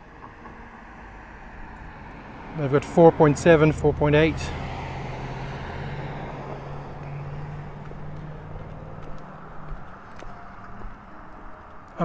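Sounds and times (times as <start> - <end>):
outdoor traffic noise: 0.0 - 12.0.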